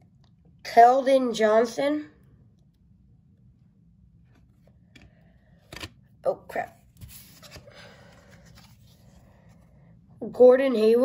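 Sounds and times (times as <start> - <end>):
card sliding against card: 7.0 - 9.2.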